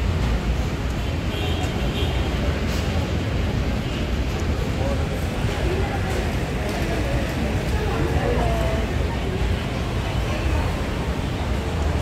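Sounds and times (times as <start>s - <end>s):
outdoor hubbub: 0.0s - 12.0s
road traffic rumble: 0.0s - 12.0s.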